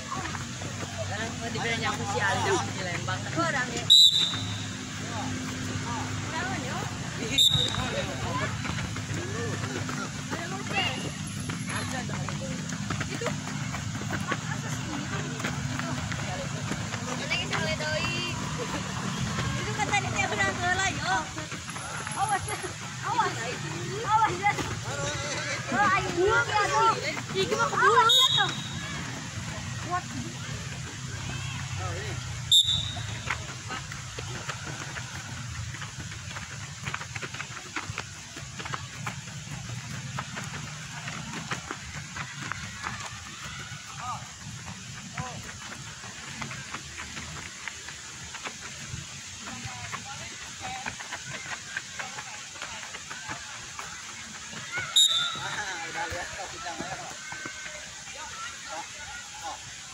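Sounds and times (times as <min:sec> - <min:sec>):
faint voices talking: 0:00.0 - 0:59.9
outdoor background noise: 0:00.0 - 0:59.9.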